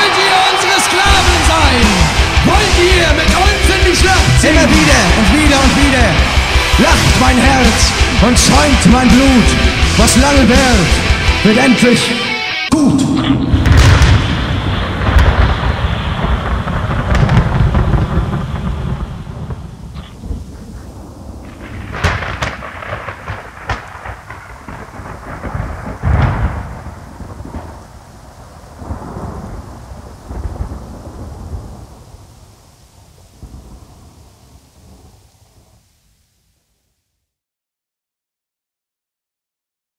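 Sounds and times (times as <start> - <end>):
sharp thunder cracks: 0.0 - 11.1, 13.2 - 35.7
thunder rolling: 0.0 - 11.4, 13.1 - 35.9
rain: 12.8 - 37.2.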